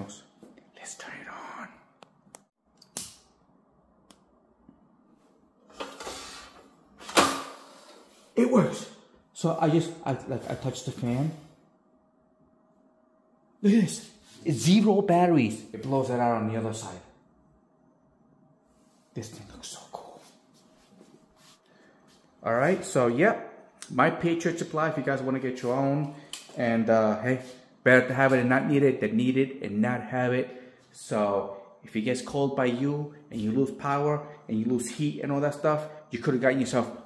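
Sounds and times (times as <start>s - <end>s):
faint steady hum: 0.0s - 37.0s.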